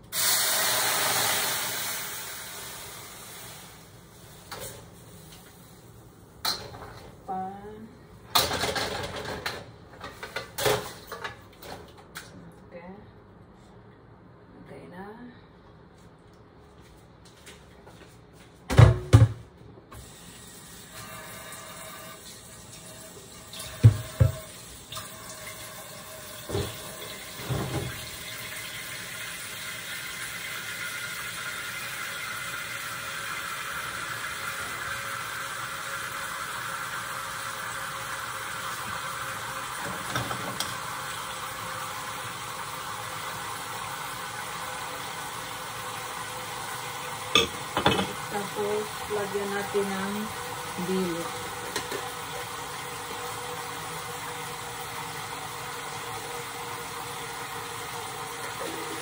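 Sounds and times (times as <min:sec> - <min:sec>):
marinade sizzling and bubbling: 0:00.0 - 0:07.8, 0:20.0 - 0:59.0.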